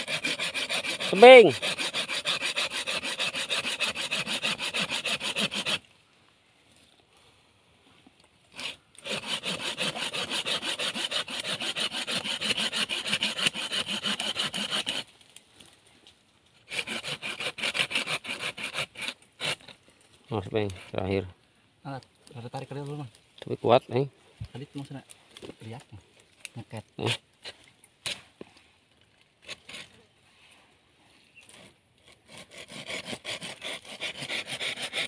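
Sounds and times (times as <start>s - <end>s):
hand saw rasping through wood: 0.0s - 5.8s, 8.5s - 15.1s, 16.7s - 19.7s, 31.6s - 35.0s.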